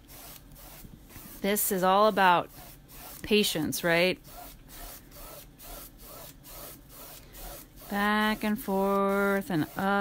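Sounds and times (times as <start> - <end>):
paintbrush swishing on canvas: 0.0 - 10.0.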